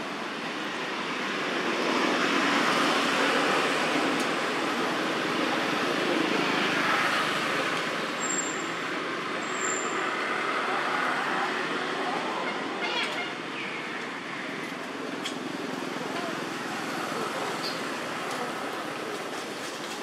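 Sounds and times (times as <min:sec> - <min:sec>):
road traffic noise: 0:00.0 - 0:20.0.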